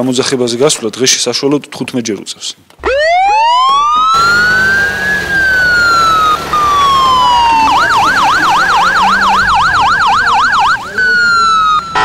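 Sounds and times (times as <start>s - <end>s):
ambulance siren wailing and yelping: 2.8s - 12.0s.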